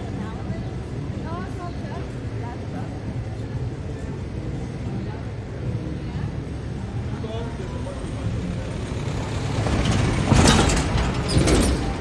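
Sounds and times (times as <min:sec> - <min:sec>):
truck engine rumble passing: 0:07.4 - 0:12.0
trailer rattling and clatter: 0:07.9 - 0:12.0.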